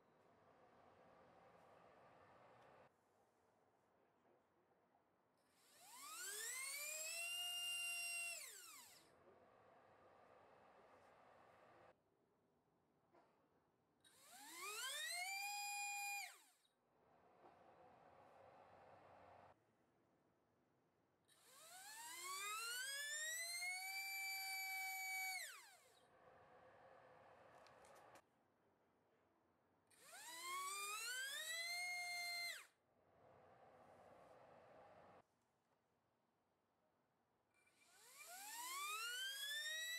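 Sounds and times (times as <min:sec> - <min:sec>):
electric motor whine: 0:05.8 - 0:09.0, 0:14.1 - 0:16.5, 0:21.4 - 0:25.9, 0:30.0 - 0:32.6, 0:37.9 - 0:39.9.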